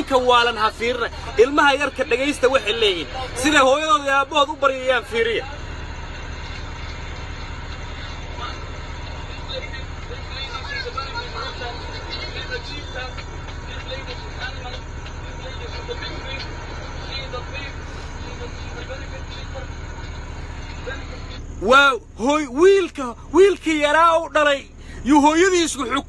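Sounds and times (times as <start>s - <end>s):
faint voices: 0.0s - 23.6s
vehicle engine rumble from cab: 0.0s - 26.0s.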